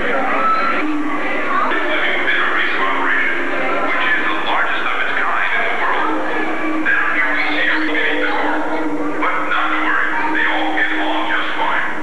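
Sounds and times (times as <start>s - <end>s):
background music: 0.0s - 12.0s
voices talking: 0.0s - 12.0s.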